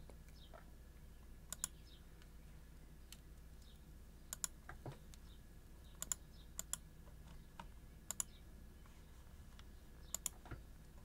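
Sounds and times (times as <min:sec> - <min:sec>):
computer control clicks: 0:01.5 - 0:01.8, 0:04.3 - 0:04.6, 0:06.0 - 0:06.8, 0:08.1 - 0:08.4, 0:10.1 - 0:10.4.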